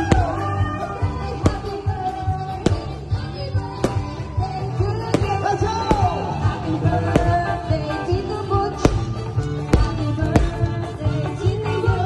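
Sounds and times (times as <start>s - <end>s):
music with singing: 0.0s - 12.0s
firework shots: 1.4s - 7.7s, 8.8s - 10.7s.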